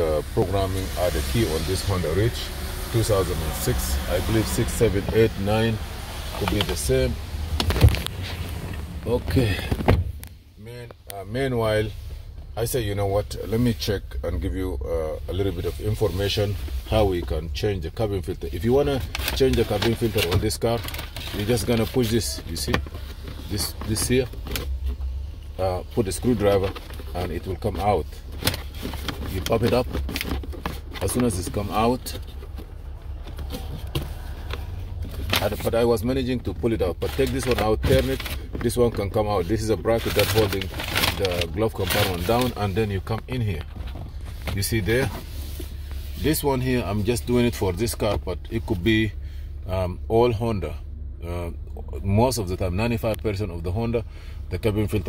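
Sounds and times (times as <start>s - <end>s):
low hum: 0.0s - 15.9s
low steady car rumble: 0.0s - 55.0s.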